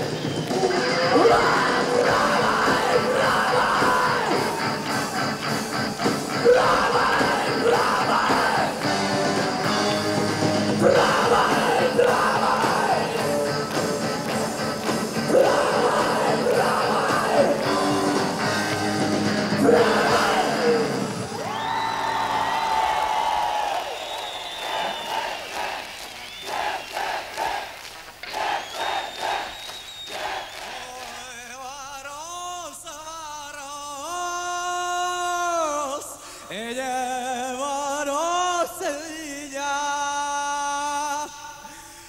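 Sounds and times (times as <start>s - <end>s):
person singing: 0.0s - 9.9s, 10.6s - 21.4s
crowd shouting: 0.0s - 13.3s, 15.2s - 18.8s, 19.4s - 30.8s
rock band playing live: 0.0s - 21.4s.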